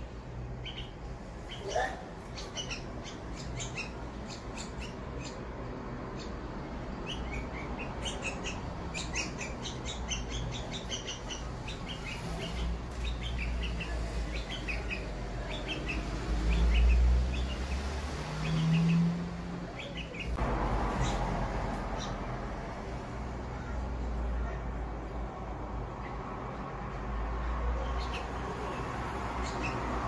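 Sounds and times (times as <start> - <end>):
chicks chirping: 0.6 - 5.5, 7.0 - 19.1.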